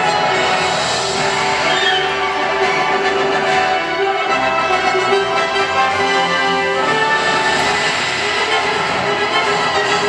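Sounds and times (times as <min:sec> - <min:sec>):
dense rushing hiss with tones: 0:06.7 - 0:10.0.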